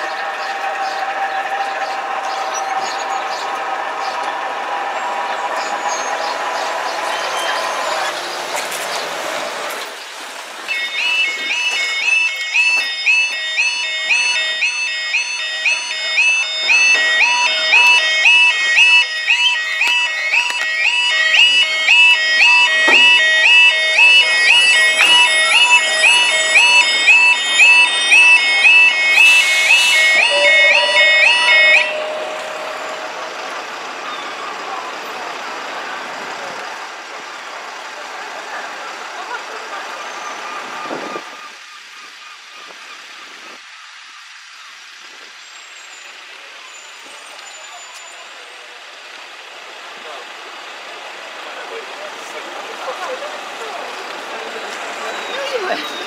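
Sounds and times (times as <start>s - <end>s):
outdoor noise rush: 0.0s - 56.0s
level crossing alarm warbling: 10.7s - 35.1s.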